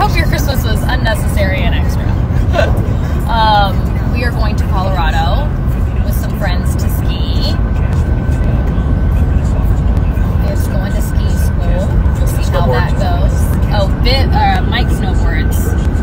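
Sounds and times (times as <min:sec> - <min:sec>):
car road and engine rumble: 0:00.0 - 0:16.0
quiet voices: 0:00.0 - 0:16.0.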